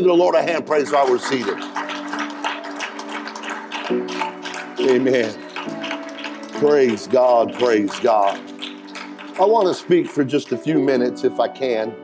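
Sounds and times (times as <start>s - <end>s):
keyboard sustained chord: 0.0s - 12.0s
congregation clapping: 0.3s - 11.1s.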